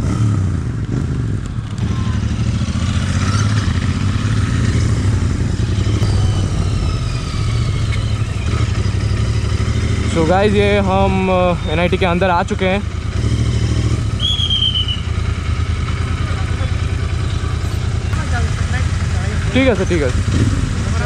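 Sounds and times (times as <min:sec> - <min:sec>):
motorcycle engine running: 0:00.0 - 0:21.0.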